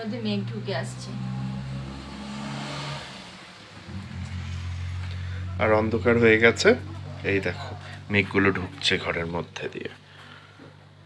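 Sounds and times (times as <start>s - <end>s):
low engine-like hum: 0.0s - 11.0s.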